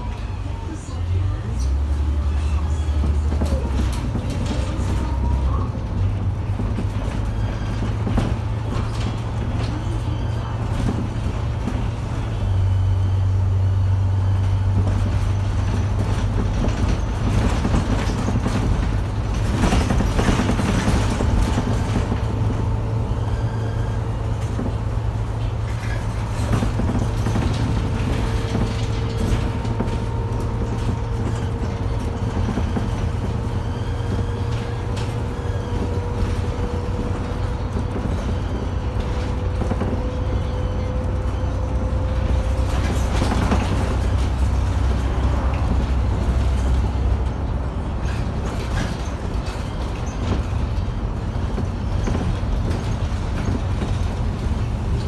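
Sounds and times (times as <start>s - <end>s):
bus engine drone: 0.0s - 55.0s
road noise: 0.0s - 55.0s.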